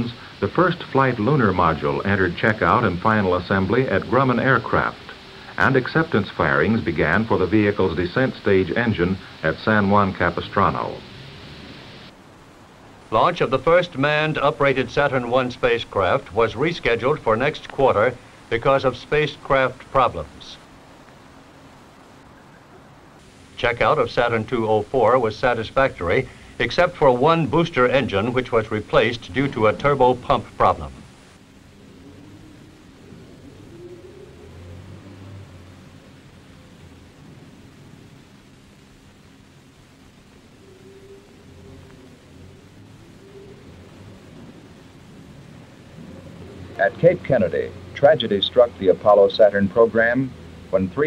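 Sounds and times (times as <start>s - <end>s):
film soundtrack hiss: 0.0s - 51.0s
low hum: 0.0s - 51.0s.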